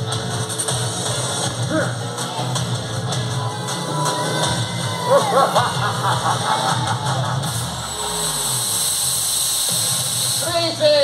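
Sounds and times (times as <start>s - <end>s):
stage show music: 0.0s - 9.4s.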